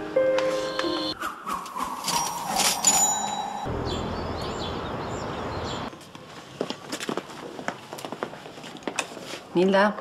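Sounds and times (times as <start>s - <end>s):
birds chirping: 0.6s - 6.0s
bright chime: 2.1s - 3.8s.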